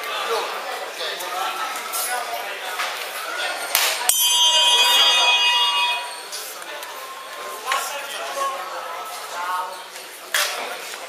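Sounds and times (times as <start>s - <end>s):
crowd talking: 0.0s - 11.0s
ringing signal bell: 4.1s - 7.2s.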